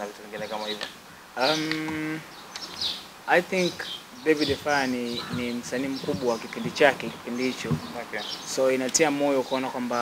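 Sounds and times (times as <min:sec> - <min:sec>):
person saying uhh: 0:01.4 - 0:02.2.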